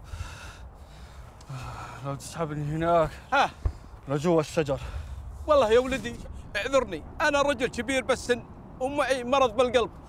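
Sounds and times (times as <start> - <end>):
quiet breathing: 0.0 - 2.4, 4.7 - 5.5.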